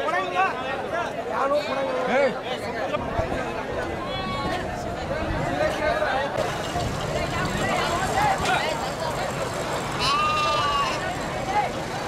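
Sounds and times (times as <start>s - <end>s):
crowd chatter: 0.0s - 12.0s
goat kid bleating: 10.0s - 11.0s.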